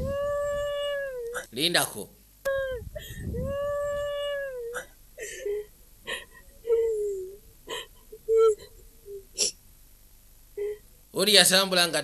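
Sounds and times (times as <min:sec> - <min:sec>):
sobbing whimpers and cries: 0:00.0 - 0:01.5, 0:02.5 - 0:09.6
woman wailing: 0:00.0 - 0:01.5, 0:02.5 - 0:09.2.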